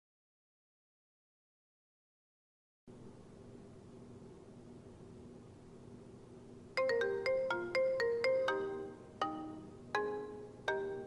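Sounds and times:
marimba-like phone ringtone: 6.8 - 11.0.

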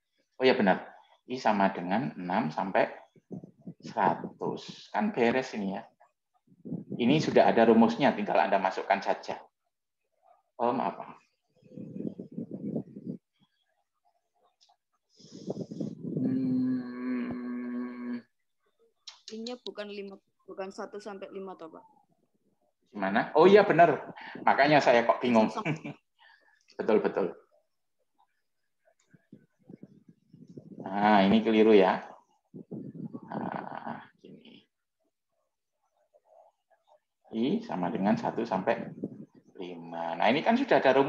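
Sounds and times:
person making low vocal sound: 15.6 - 18.4, 32.7 - 34.2.

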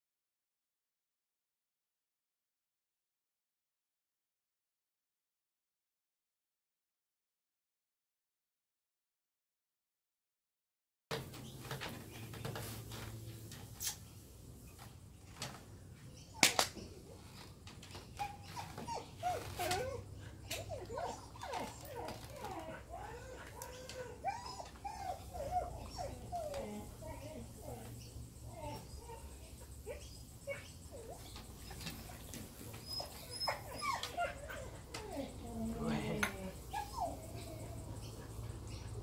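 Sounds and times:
dog whining: 16.2 - 39.0.

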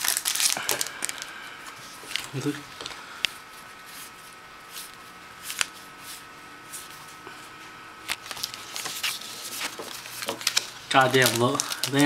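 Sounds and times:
cards sliding through hands: 1.8 - 7.3, 8.1 - 10.7.

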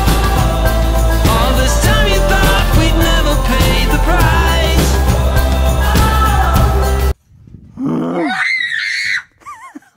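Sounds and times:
boy yelling and screaming: 8.1 - 9.4.

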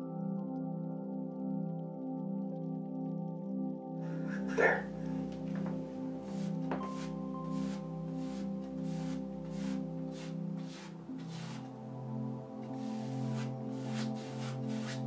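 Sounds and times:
ambient synthesizer chords: 0.0 - 15.0
paintbrush scrubbing on canvas: 4.5 - 11.8, 12.7 - 15.0.

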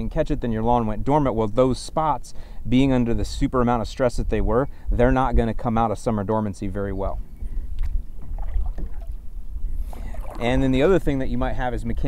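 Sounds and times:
wind on microphone: 2.6 - 12.0
faint splashes and drips: 7.8 - 9.2, 9.8 - 11.0
paddle stroking through water: 7.8 - 11.0.

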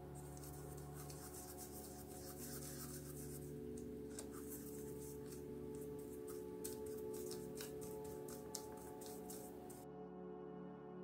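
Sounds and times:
paintbrush scrubbing on palette: 0.0 - 9.8
quiet background music: 0.0 - 11.0.

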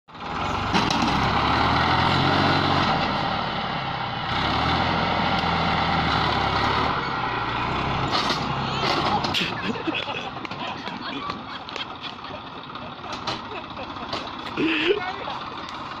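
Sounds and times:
tractor engine running: 0.1 - 16.0.

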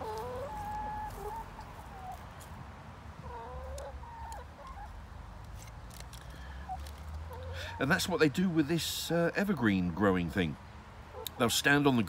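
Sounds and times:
hens calling: 0.0 - 2.4, 3.2 - 5.0, 6.5 - 8.3, 11.0 - 12.0.

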